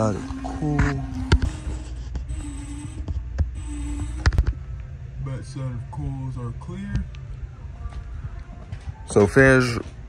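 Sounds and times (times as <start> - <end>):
evaporator fans humming: 0.0 - 10.0.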